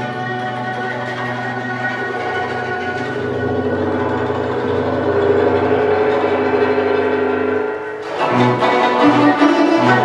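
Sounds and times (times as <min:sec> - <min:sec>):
bowed string lines: 0:00.0 - 0:10.0
flute melody: 0:00.0 - 0:10.0
plucked zither notes: 0:00.0 - 0:10.0.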